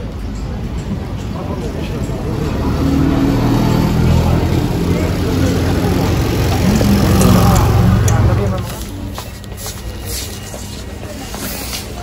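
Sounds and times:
auto-rickshaw engine running: 0:00.0 - 0:11.4
street voices: 0:00.0 - 0:12.0.

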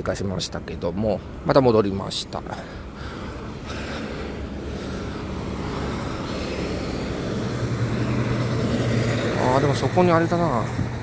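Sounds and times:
road traffic passing: 0:00.0 - 0:11.0
truck engine hum: 0:00.0 - 0:11.0.

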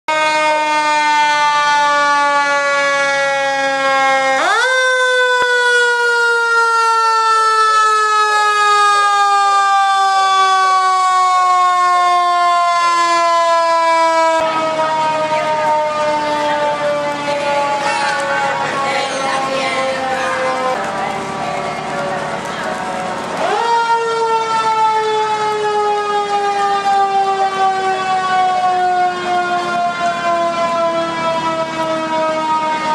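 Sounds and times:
fire engine siren wailing: 0:00.1 - 0:32.9
noisy background: 0:14.5 - 0:24.9.

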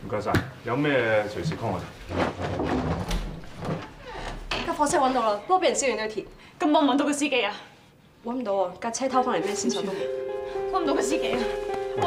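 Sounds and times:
chairs moving: 0:01.6 - 0:04.9.

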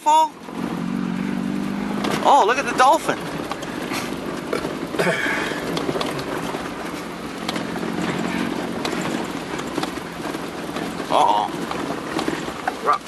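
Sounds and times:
vehicle engine running: 0:00.0 - 0:13.0
vehicle knocks and rattles: 0:00.4 - 0:13.0.

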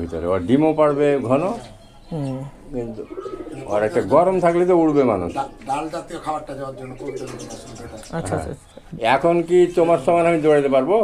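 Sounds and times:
pigeons cooing: 0:00.0 - 0:11.0.

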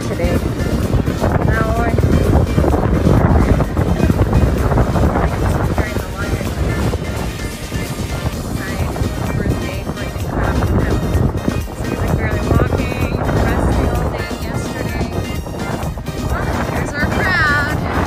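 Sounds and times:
background music: 0:00.0 - 0:18.0
voices: 0:00.0 - 0:18.0
wind buffeting microphone: 0:00.0 - 0:18.0.

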